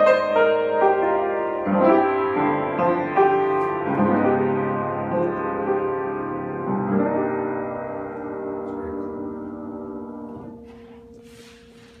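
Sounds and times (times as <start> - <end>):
piano chord ringing: 0.0 - 12.0.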